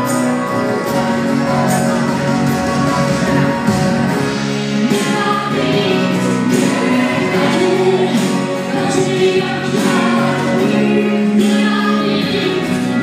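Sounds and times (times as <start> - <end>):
acoustic guitar: 0.0 - 13.0
band accompaniment: 0.0 - 13.0
man and woman singing: 4.8 - 13.0.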